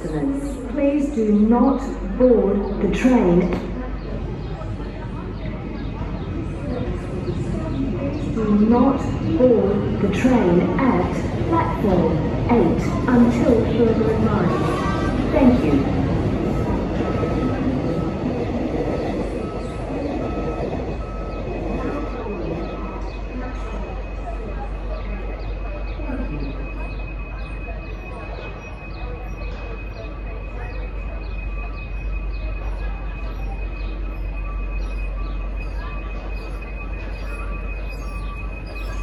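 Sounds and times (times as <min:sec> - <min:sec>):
low rumble of rail noise: 0:00.0 - 0:39.0.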